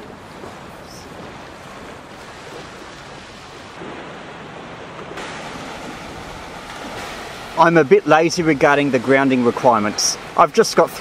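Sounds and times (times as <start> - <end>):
small waves breaking on beach: 0.0 - 11.0.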